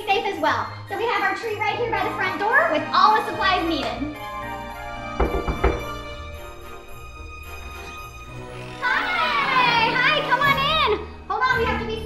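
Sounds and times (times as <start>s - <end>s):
high-pitched voices calling greetings: 8.7s - 12.0s.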